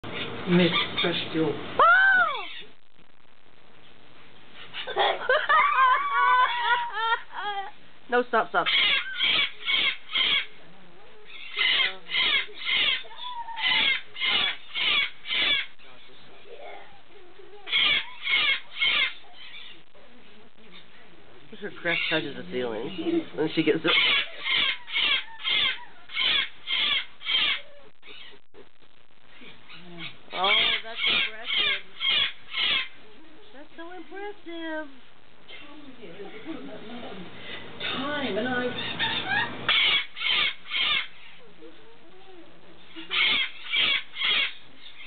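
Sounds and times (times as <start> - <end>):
cockatoo giving loud calls: 8.6 - 10.6, 11.2 - 20.0, 23.8 - 28.5, 29.3 - 33.2, 37.8 - 45.0
soft voice-like bird sounds: 29.3 - 33.6.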